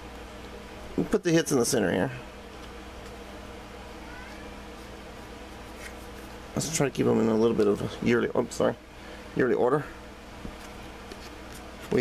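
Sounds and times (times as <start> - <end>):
low buzzing room hum: 0.0 - 12.0.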